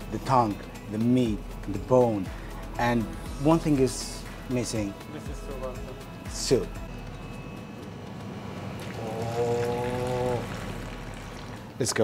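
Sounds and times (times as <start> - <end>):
man humming: 8.8 - 10.9.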